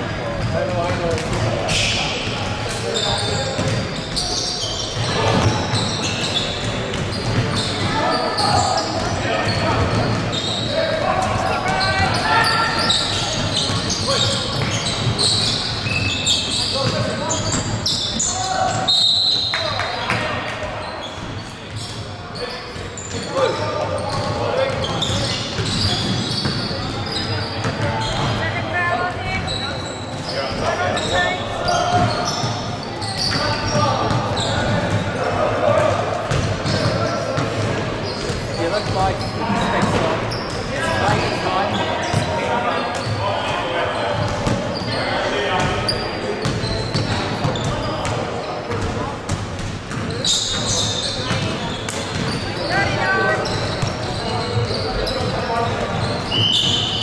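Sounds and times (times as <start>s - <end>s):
chatter and calls of people: 0.0s - 57.0s
ball bouncing on wooden court: 27.6s - 28.4s, 46.4s - 56.8s.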